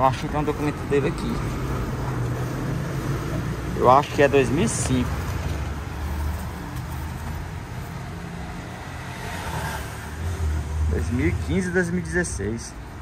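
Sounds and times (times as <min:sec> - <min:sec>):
motor vehicle rumble: 0:00.0 - 0:13.0.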